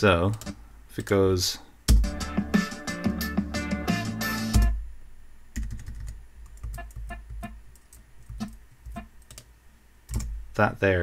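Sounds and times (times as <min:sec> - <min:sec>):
instrumental music with beat: 0:01.9 - 0:05.0, 0:06.6 - 0:07.6.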